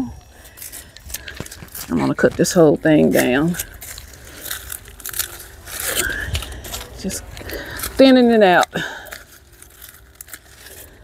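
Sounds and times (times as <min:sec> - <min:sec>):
leaves rustling and crunching: 0:00.0 - 0:11.0
scissors snipping plant stalks: 0:00.2 - 0:11.0.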